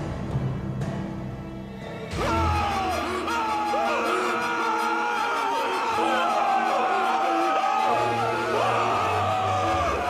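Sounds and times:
dramatic music: 0.0 - 10.0
men screaming in horror: 2.1 - 10.0.

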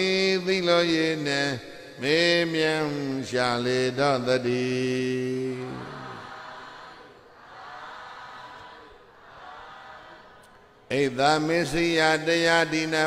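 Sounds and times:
man chanting: 0.0 - 6.4, 10.9 - 13.0.

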